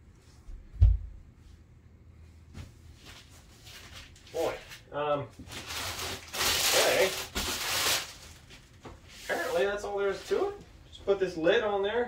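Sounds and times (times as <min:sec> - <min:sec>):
plastic wrap rustling: 0:03.0 - 0:10.6.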